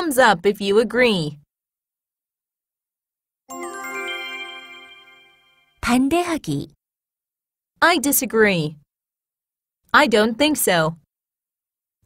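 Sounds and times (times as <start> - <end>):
bell-like chime: 3.5 - 5.8.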